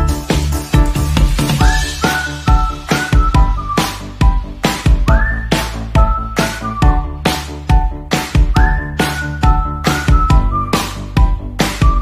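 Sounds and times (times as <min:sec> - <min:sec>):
whistled melody: 0:01.4 - 0:12.0.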